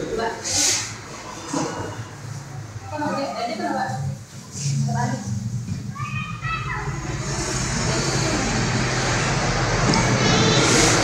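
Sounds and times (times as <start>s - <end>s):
wall fan running: 0.0s - 11.0s.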